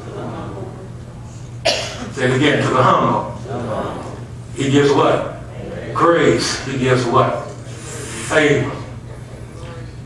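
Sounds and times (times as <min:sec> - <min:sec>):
faint murmuring voices: 0:00.0 - 0:01.6, 0:03.2 - 0:10.0
sharp cough: 0:01.6 - 0:02.2.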